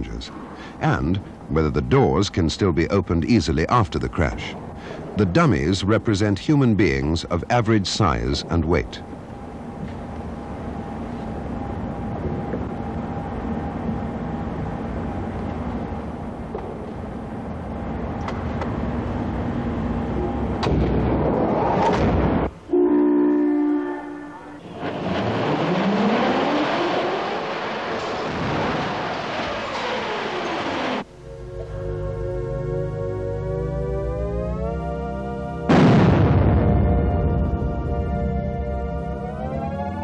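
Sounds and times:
steady machine hum: 0.0 - 25.1, 30.7 - 40.0
horn-like signal: 22.7 - 24.8
rushing run-up noise: 24.6 - 31.1.

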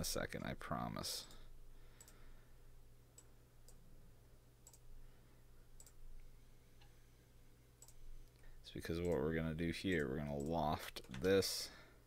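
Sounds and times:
low room hum: 0.0 - 12.0
computer mouse clicks: 2.0 - 2.2, 4.6 - 4.8, 5.8 - 6.0, 7.8 - 8.4, 9.9 - 11.4.

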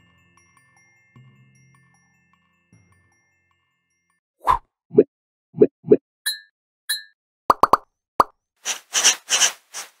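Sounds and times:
airy swishing bursts: 8.6 - 10.0.

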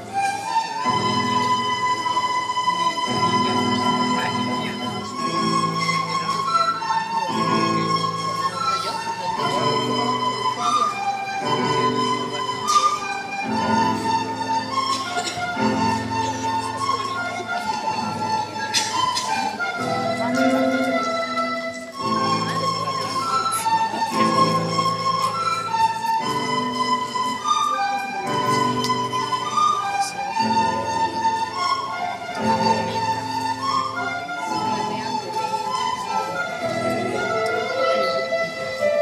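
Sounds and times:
recorder ensemble playing melody: 0.0 - 39.0.

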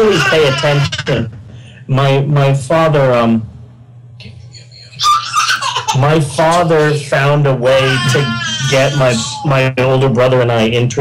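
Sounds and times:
baby laughing squeal: 0.0 - 1.2, 4.6 - 6.8, 7.6 - 9.5.

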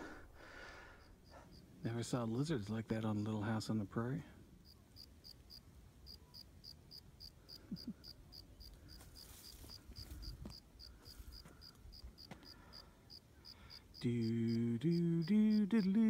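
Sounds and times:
cricket chirping: 0.7 - 1.7, 4.6 - 16.0.

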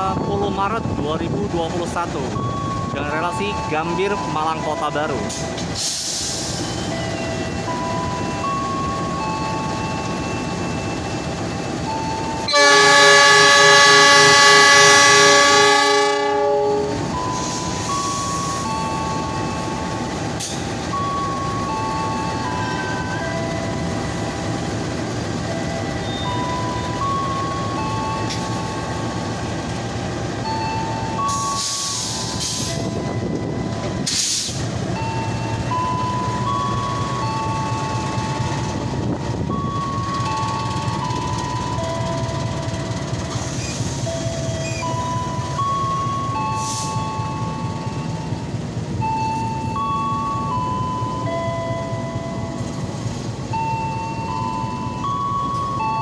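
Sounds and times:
locomotive engine running: 0.0 - 56.0
locomotive horn blast: 12.5 - 17.1.

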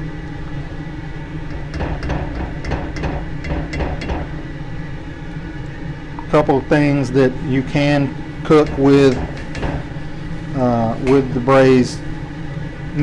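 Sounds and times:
low hum: 0.0 - 13.0.

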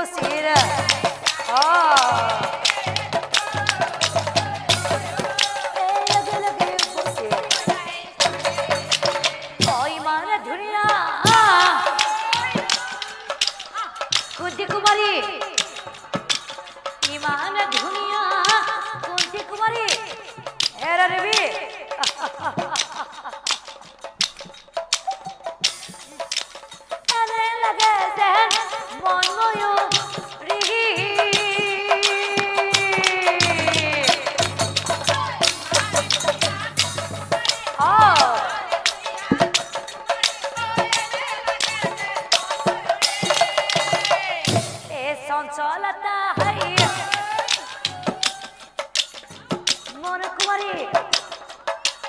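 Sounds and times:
drum strokes: 0.0 - 45.3, 46.4 - 52.0.

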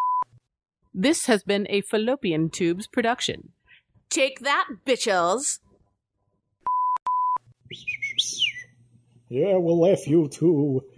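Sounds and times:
high chirping: 7.7 - 8.8.

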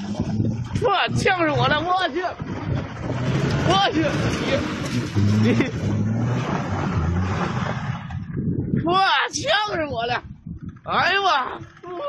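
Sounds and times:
car engine revving: 0.0 - 8.4.

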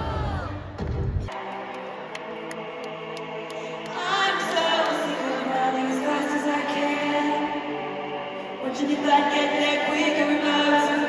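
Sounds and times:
person singing: 1.3 - 11.0.

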